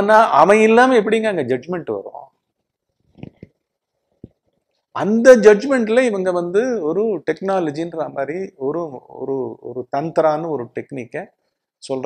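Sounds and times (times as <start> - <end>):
soft mouth or movement noises: 3.0 - 4.8.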